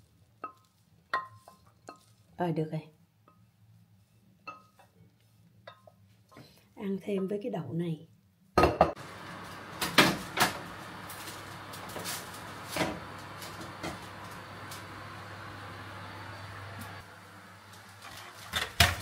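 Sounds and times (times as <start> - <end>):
oven humming: 9.0 - 19.0
oven door opening: 9.3 - 15.0.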